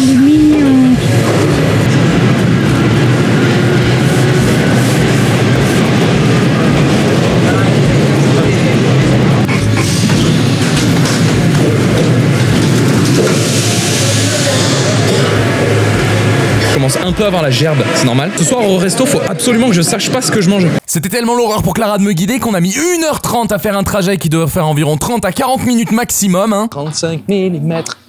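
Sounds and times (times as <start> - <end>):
metro train rumble and rattle: 0.0 - 20.8.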